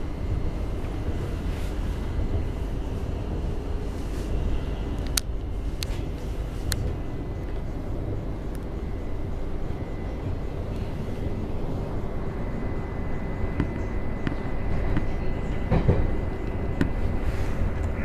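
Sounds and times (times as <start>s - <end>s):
faint high whine: 0.0s - 18.0s
train wheels rumbling on track: 0.0s - 18.0s.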